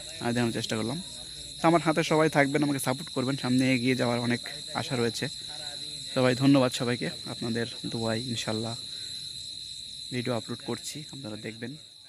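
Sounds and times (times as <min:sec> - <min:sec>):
person talking: 0:00.0 - 0:08.8
crickets trilling: 0:00.0 - 0:12.0.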